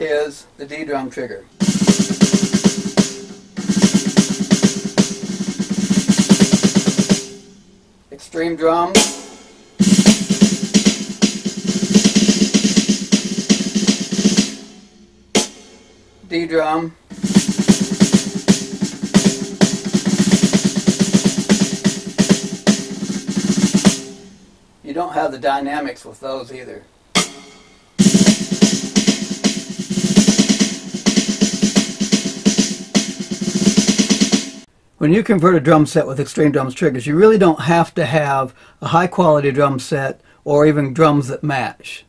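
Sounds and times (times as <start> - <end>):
electronic drum hits: 1.6 - 7.7, 9.0 - 16.0, 17.1 - 24.4, 27.2 - 34.7.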